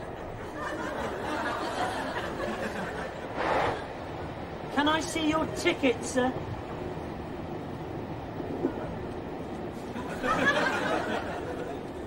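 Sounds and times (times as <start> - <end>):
railway carriage rumbling: 0.0 - 12.0.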